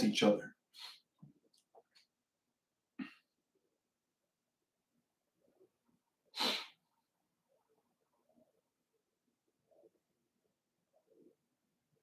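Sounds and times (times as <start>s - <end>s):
sharp burst of breath: 6.4s - 6.8s.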